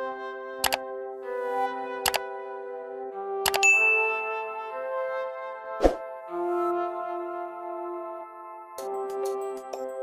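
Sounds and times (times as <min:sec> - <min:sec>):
soft background music: 0:00.0 - 0:10.0
bell-like notification ding: 0:03.5 - 0:04.3.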